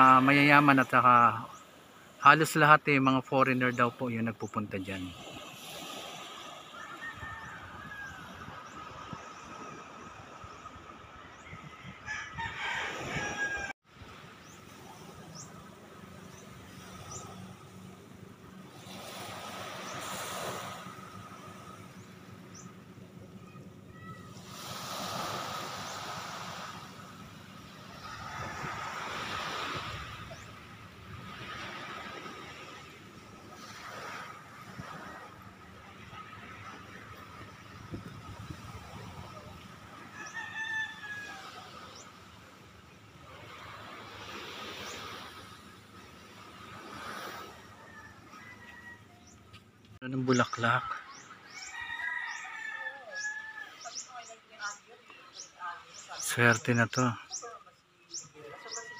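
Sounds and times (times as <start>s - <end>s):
waves washing onto sand: 0.0s - 11.1s, 12.6s - 23.2s, 23.9s - 54.3s.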